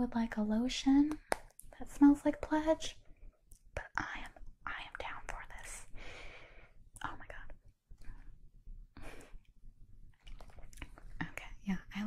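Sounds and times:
woman whispering: 3.8s - 5.9s, 7.0s - 7.6s, 11.1s - 12.0s.

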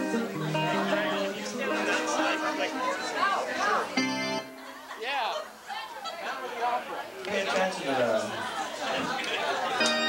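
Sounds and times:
music with held notes: 0.0s - 4.9s, 9.7s - 10.0s
people chattering: 0.0s - 10.0s.

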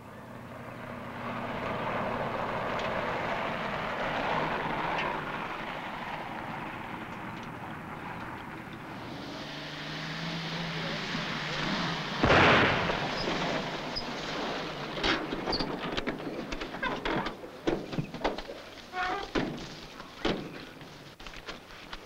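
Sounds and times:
car engine and driving noise: 0.0s - 22.0s.

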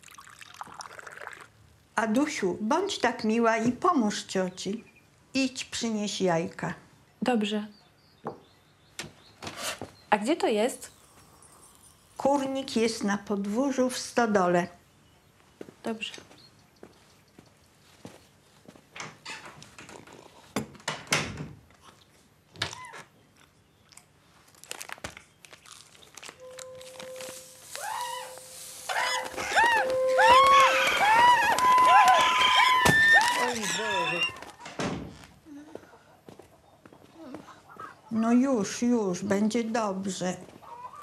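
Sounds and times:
steady tone: 26.4s - 31.8s
chickens squawking: 27.6s - 34.5s, 40.6s - 41.0s.

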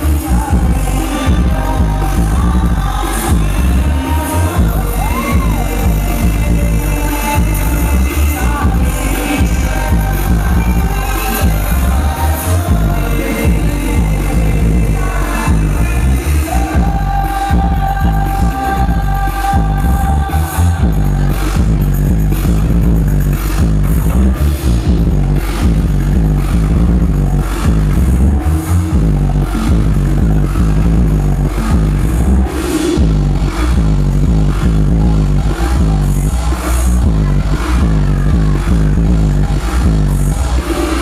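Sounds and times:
electronic dance music: 0.0s - 41.0s.

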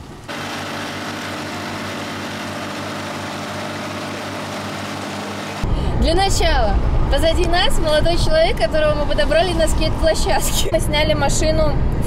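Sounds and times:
outboard motor running: 0.0s - 5.8s.

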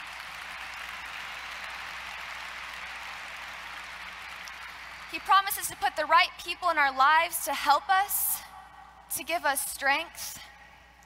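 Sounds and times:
audience applauding: 0.0s - 5.8s.

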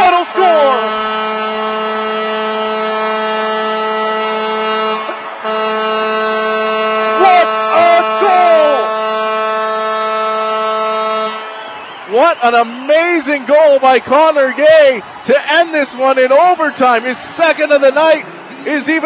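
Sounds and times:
goal horn blast: 0.0s - 12.0s
people shouting: 7.0s - 8.9s.

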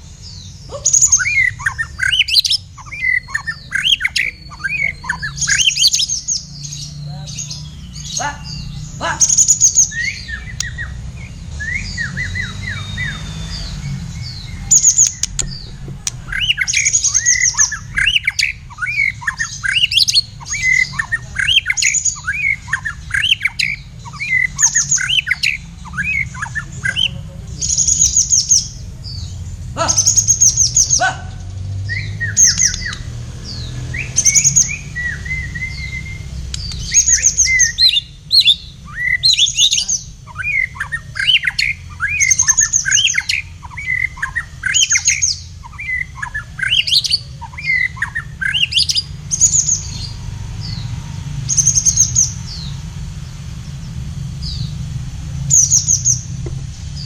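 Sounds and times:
high bird trills: 0.0s - 31.2s, 31.8s - 50.9s
birds singing whistles and chirps: 0.0s - 57.0s.

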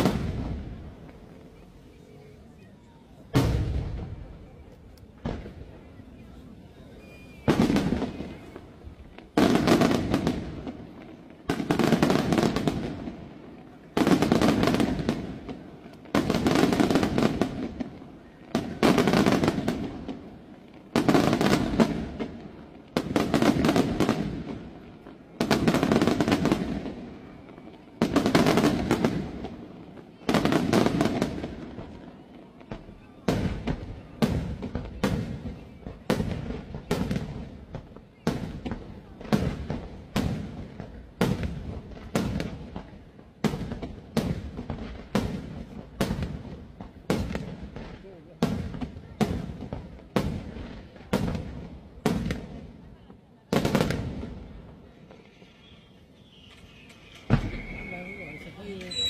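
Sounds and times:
firework shells bursting: 55.2s - 59.0s.

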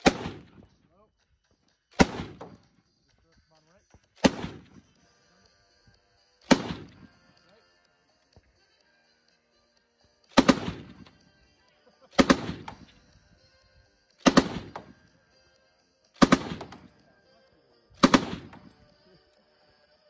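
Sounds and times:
rifle shots with echo: 0.0s - 0.7s, 1.9s - 2.7s, 4.2s - 4.9s, 6.4s - 7.2s, 10.3s - 11.1s, 12.1s - 13.0s, 14.2s - 15.0s, 16.2s - 17.0s, 18.0s - 18.9s.

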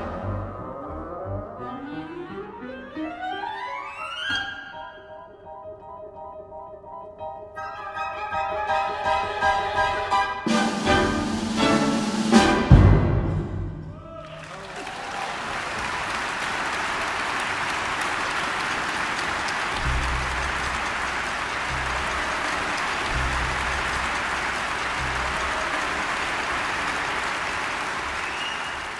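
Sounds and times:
orchestral chord: 9.0s - 13.8s
audience applauding: 14.0s - 28.9s.

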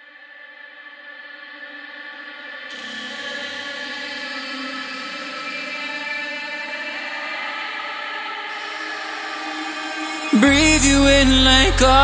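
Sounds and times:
sustained synth chord: 10.4s - 12.0s.

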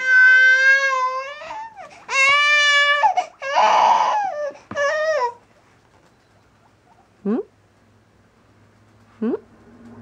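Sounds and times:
baby crying: 0.0s - 5.4s.

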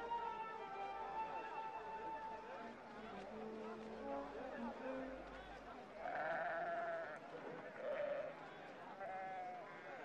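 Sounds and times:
sheep bleating: 6.0s - 8.3s.

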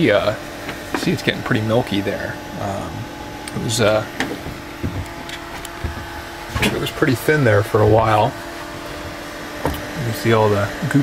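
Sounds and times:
electric motor hum: 0.0s - 11.0s.

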